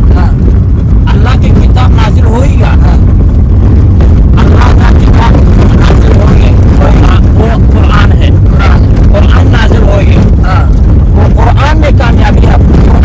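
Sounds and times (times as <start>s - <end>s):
man talking: 0.0s - 0.4s, 1.1s - 3.1s, 4.4s - 13.0s
car engine rumble: 0.0s - 13.0s
road noise inside car: 0.0s - 13.0s.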